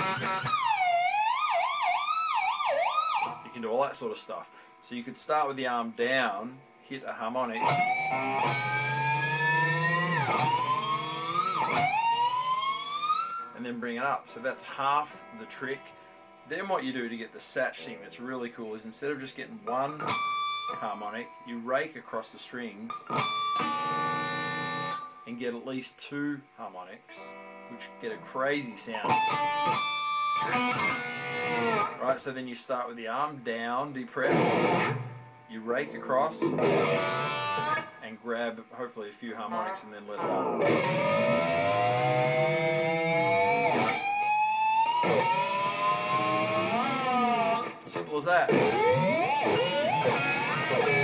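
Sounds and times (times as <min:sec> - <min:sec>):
electric guitar squealing harmonic: 0:00.0 - 0:03.4, 0:07.6 - 0:13.6, 0:20.0 - 0:21.4, 0:23.0 - 0:25.2, 0:29.0 - 0:32.0, 0:34.4 - 0:35.4, 0:36.4 - 0:38.0, 0:39.5 - 0:47.9, 0:48.5 - 0:51.0.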